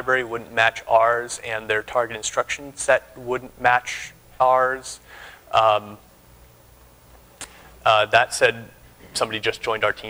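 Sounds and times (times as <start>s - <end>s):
man speaking: 0.0s - 6.1s, 7.8s - 10.0s
low room hum: 0.0s - 10.0s.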